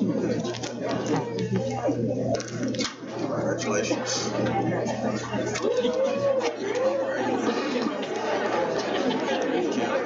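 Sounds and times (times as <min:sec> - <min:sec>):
murmur of conversation: 0:00.0 - 0:10.0.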